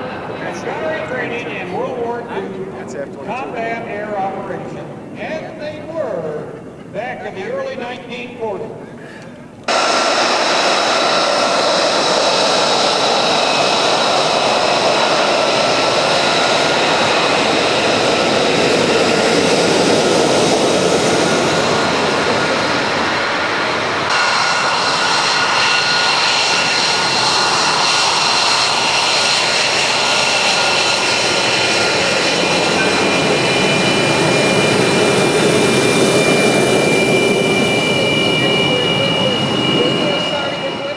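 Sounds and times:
jet engine roar with whine: 0:00.0 - 0:40.9.

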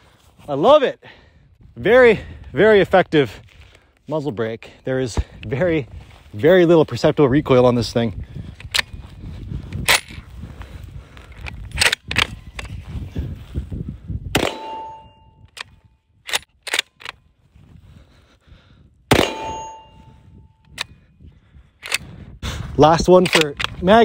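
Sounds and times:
rifle bolt clicks: 0:11.4 - 0:12.7, 0:15.5 - 0:17.2, 0:21.8 - 0:22.0, 0:23.2 - 0:23.9
rifle shots: 0:14.4 - 0:15.1, 0:19.1 - 0:20.0
steel target ringing: 0:14.4 - 0:15.4, 0:19.1 - 0:20.1.

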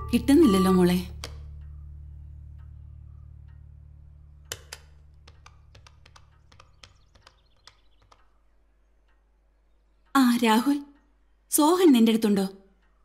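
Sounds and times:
low musical drone: 0:00.0 - 0:05.6.

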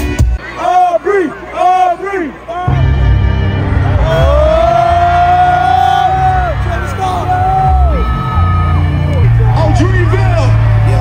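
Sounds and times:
hip-hop concert music: 0:00.0 - 0:11.0
heavy bass beat: 0:02.7 - 0:11.0.

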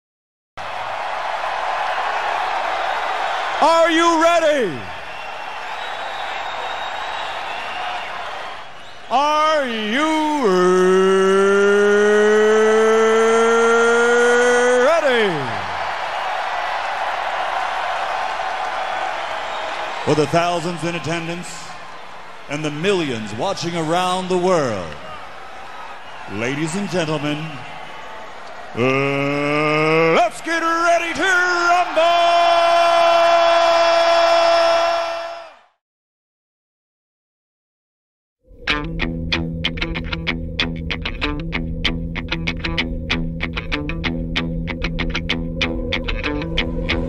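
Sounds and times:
announcer's amplified voice: 0:03.6 - 0:04.9, 0:09.1 - 0:15.7, 0:20.0 - 0:21.8, 0:22.5 - 0:25.1, 0:26.3 - 0:27.7, 0:28.8 - 0:33.9.

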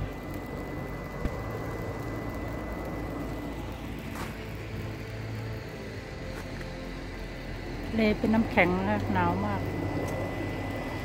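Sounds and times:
outdoor rumble and hiss: 0:00.0 - 0:11.0.

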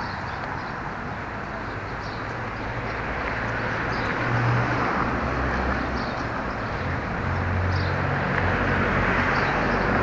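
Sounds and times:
car passing: 0:00.0 - 0:10.0
road traffic rushing: 0:00.0 - 0:10.0.

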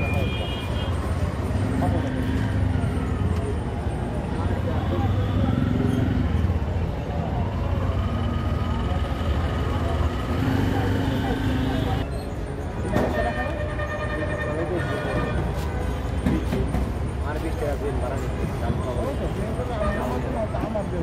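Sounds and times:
traffic rumble: 0:00.0 - 0:21.0
people talking: 0:01.6 - 0:06.3, 0:08.6 - 0:12.1, 0:12.8 - 0:21.0.

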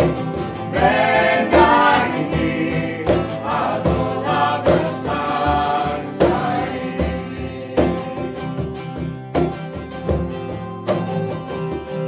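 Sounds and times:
women singing a worship song: 0:00.7 - 0:08.4.

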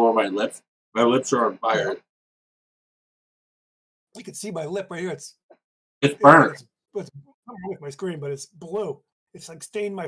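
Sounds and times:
person speaking: 0:06.1 - 0:09.6.

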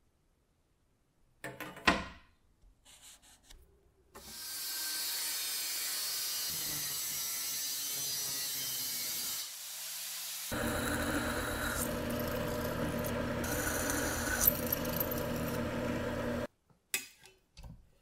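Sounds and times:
angle grinder cutting steel: 0:04.3 - 0:16.5
drill press boring metal: 0:10.5 - 0:16.5.

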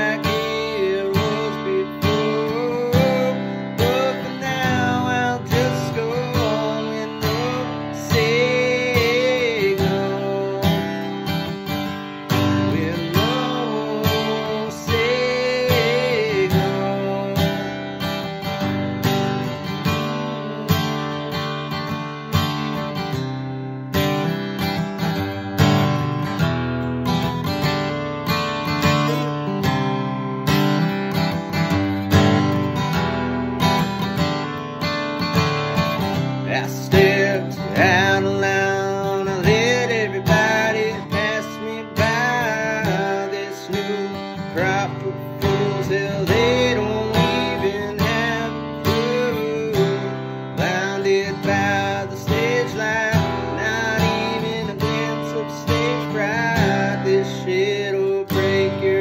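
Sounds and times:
man singing wordless notes: 0:00.0 - 0:18.5, 0:19.4 - 0:21.5, 0:36.4 - 0:59.0
acoustic guitar strumming: 0:00.0 - 0:59.0.

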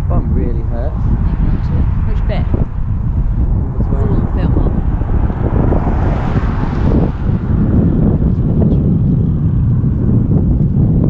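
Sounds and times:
wind buffeting microphone: 0:00.0 - 0:11.0
car passing whoosh: 0:00.6 - 0:10.6.

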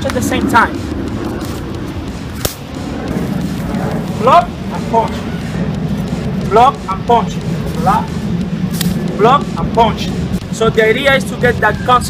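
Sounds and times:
low outdoor rumble: 0:00.0 - 0:12.0
sharp slap of arm on arm: 0:02.4 - 0:02.7.

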